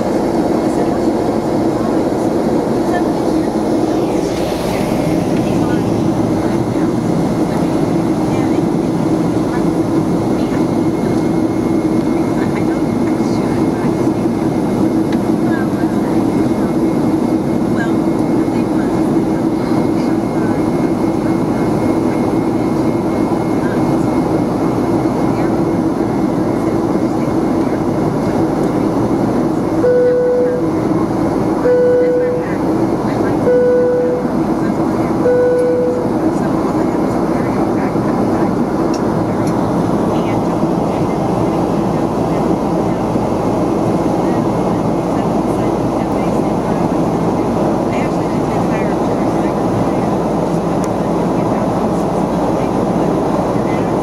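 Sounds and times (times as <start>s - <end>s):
airplane engine drone: 0.0s - 54.0s
low hum: 1.8s - 16.7s
rushing noise: 2.7s - 9.3s.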